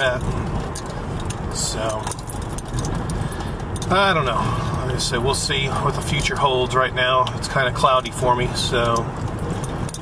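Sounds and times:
car engine and road rumble: 0.0 - 10.0
faint rattling clicks: 0.1 - 4.0.

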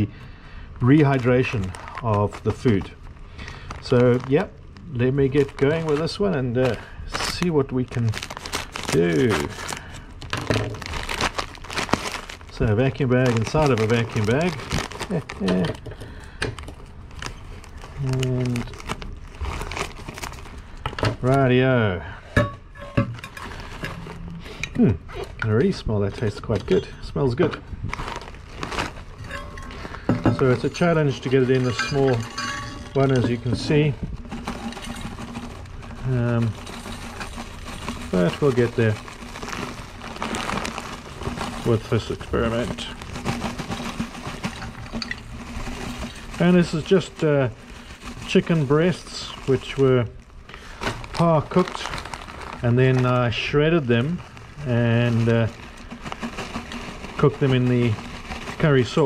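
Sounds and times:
plastic bag crinkling: 0.0 - 22.2, 23.1 - 59.0
steady background hum: 0.0 - 59.0
dried food rattling into flask: 0.8 - 22.1, 23.0 - 59.0.

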